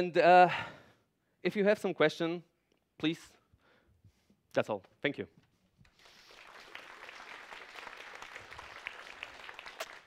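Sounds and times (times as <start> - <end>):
audience applauding: 5.9 - 10.0.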